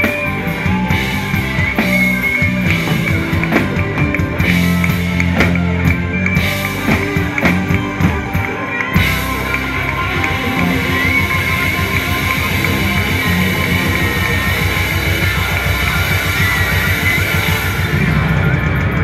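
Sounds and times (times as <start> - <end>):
bass guitar: 0.0 - 19.0
drums: 0.0 - 19.0
electric guitar solo: 0.0 - 19.0.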